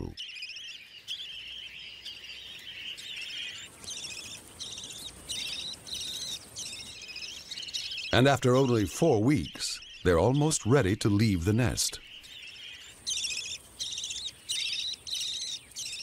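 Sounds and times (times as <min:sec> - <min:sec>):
budgerigars chirping and warbling: 0:00.0 - 0:16.0.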